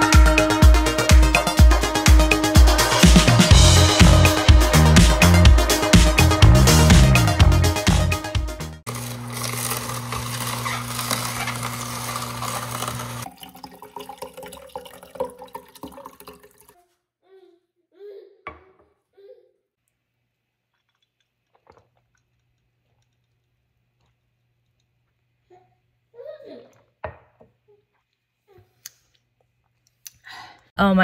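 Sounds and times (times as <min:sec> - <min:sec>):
celery crushing and crackling: 0:08.9 - 0:13.2
juicer motor humming: 0:08.9 - 0:15.5.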